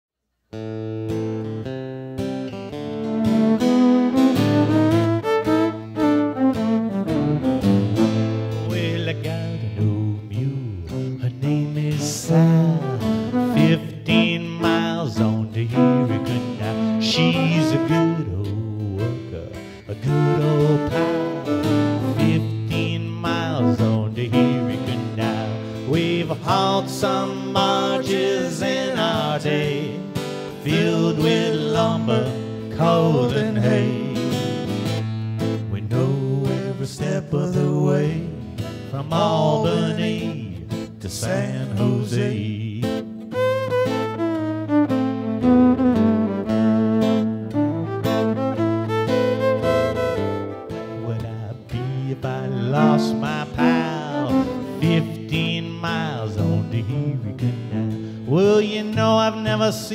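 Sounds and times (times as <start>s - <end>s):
strummed acoustic guitar: 0.5s - 59.9s
fiddle sliding between notes: 3.0s - 8.6s, 12.8s - 18.7s, 19.6s - 22.8s, 43.3s - 55.3s.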